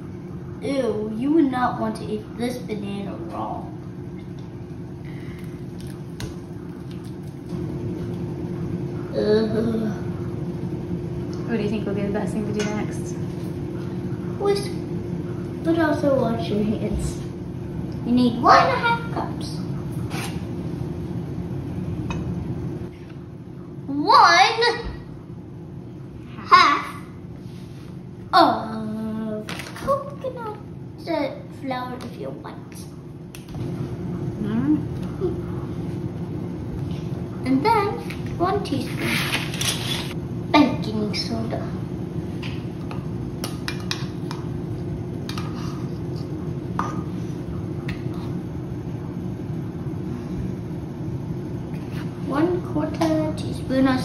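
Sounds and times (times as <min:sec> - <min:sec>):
low background hum: 0:00.0 - 0:54.0.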